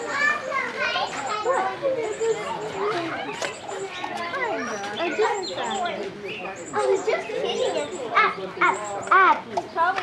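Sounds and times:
children talking and calling: 0:00.0 - 0:10.0.

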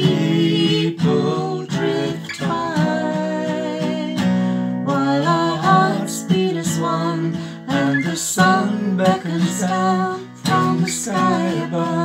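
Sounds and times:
acoustic guitar strumming chords: 0:00.0 - 0:12.0
woman singing folk melody: 0:00.0 - 0:12.0.

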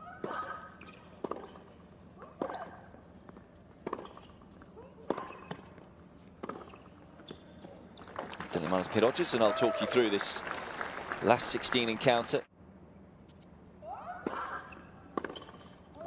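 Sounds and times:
ball bouncing on hard court: 0:00.2 - 0:01.7, 0:15.1 - 0:15.8
racquet striking tennis ball: 0:01.2 - 0:01.7.

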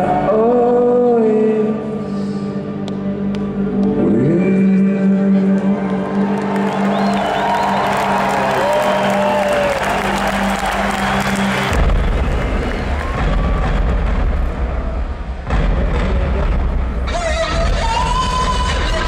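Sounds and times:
deep bass: 0:00.0 - 0:19.0
arena crowd cheering: 0:05.6 - 0:15.4.

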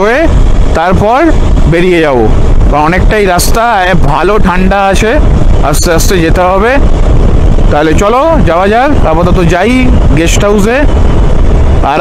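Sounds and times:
man talking: 0:00.0 - 0:06.9, 0:07.7 - 0:10.9, 0:11.8 - 0:12.0
wind rushing on microphone: 0:00.0 - 0:12.0.

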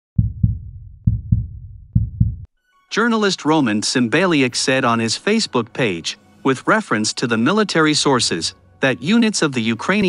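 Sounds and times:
heartbeat thumps: 0:00.2 - 0:02.5.

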